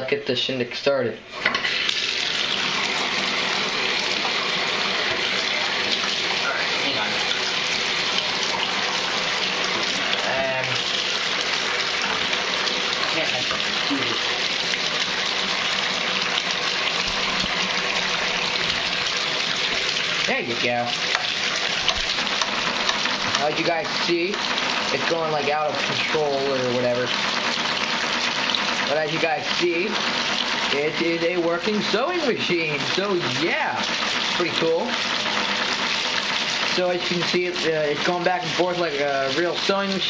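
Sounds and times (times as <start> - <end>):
water pouring into tub: 1.3 - 40.0.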